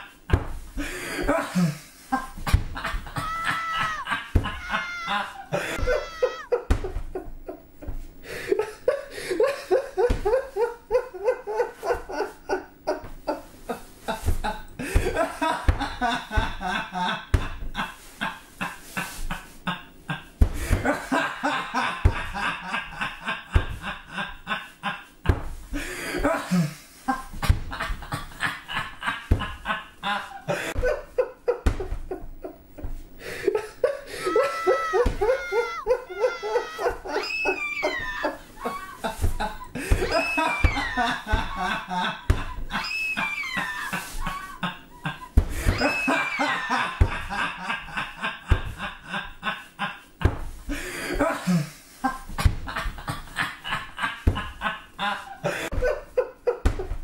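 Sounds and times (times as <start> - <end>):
person laughing: 0.0 - 57.0.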